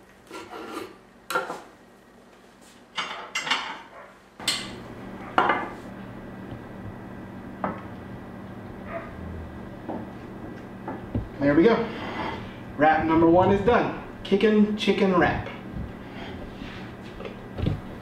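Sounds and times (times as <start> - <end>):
knife scraping on cutting board: 0.3 - 1.0
low hum: 4.4 - 18.0.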